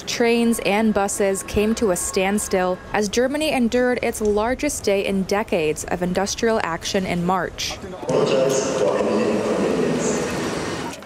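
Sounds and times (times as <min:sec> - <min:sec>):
echoing drone of trains: 0:00.0 - 0:04.4.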